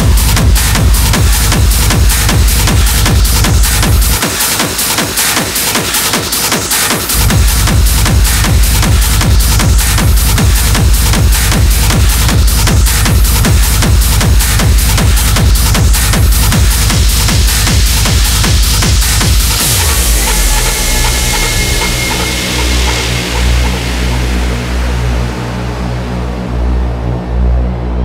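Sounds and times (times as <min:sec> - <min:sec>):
dense electronic texture: 0:00.0 - 0:04.4, 0:07.1 - 0:28.0
fast techno kick drum: 0:00.0 - 0:25.2.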